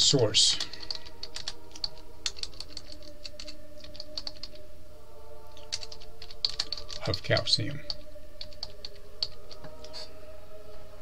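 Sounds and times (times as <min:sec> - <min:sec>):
computer keyboard typing: 0:00.6 - 0:04.6, 0:05.5 - 0:10.0.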